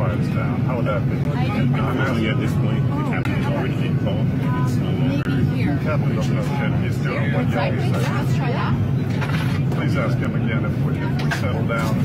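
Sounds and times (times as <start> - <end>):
airliner cabin drone: 0.0 - 12.0.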